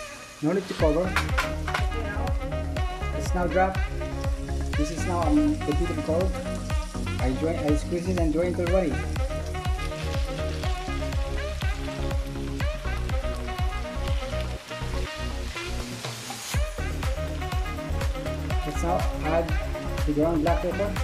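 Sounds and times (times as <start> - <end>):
background music with steady beat: 0.0 - 21.0
food sizzling in a pan: 0.0 - 21.0.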